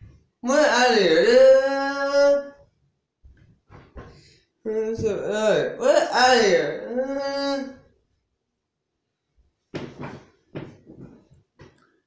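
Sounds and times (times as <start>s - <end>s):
bumping and rustling handling noise: 3.3s - 4.2s, 9.7s - 11.8s.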